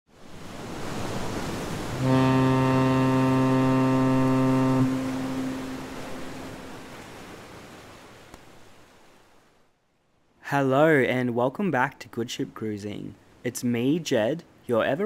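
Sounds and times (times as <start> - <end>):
wind and sea hiss: 0.1 - 10.9, 12.3 - 15.0
ship horn blast: 1.9 - 7.0.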